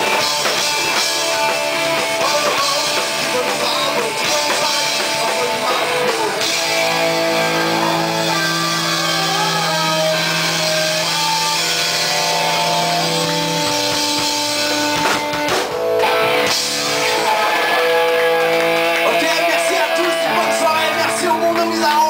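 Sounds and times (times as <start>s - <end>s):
drum kit: 0.0s - 22.0s
electric guitars ringing: 0.0s - 22.0s.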